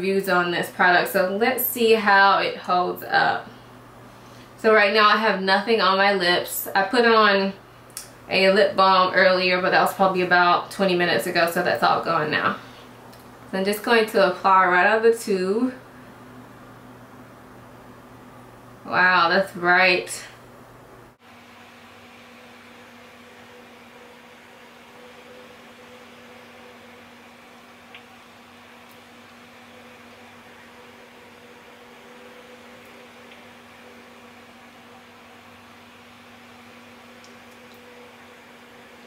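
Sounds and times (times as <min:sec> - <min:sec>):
room hum with faint hiss: 0:00.0 - 0:39.0.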